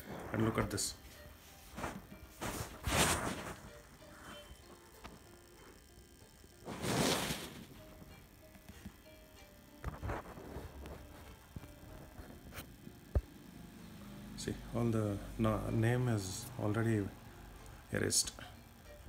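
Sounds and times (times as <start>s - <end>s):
faint music tones: 0.0s - 19.0s
microphone handling rustling: 1.7s - 3.8s.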